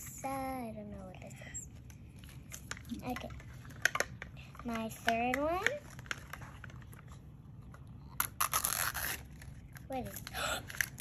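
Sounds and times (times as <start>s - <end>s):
plastic wrapper crinkling and tearing: 5.7s - 11.0s.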